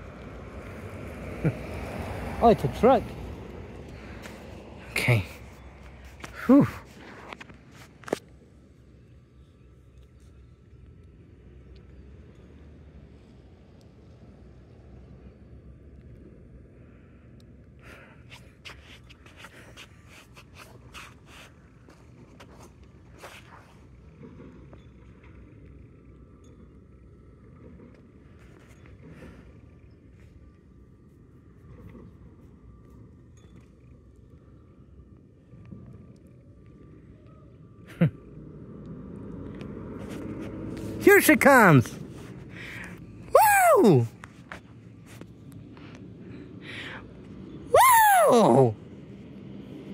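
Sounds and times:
distant traffic rumble: 0:00.0 - 0:49.9.

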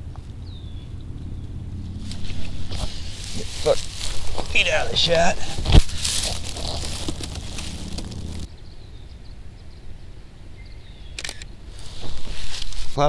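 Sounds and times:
rustling on dry grass and leaves: 0:00.0 - 0:08.5, 0:11.6 - 0:13.0.

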